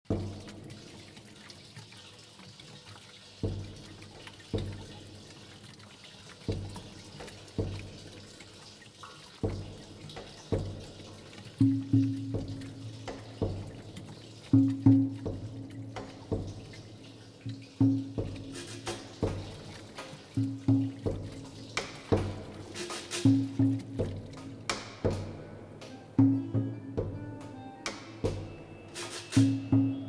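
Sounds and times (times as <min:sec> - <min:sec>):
plastic drums struck: 0:11.6 - 0:13.8, 0:17.8 - 0:28.6.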